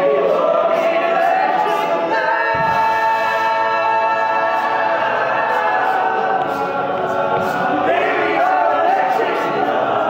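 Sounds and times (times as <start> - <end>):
male a cappella group singing: 0.0 - 10.0.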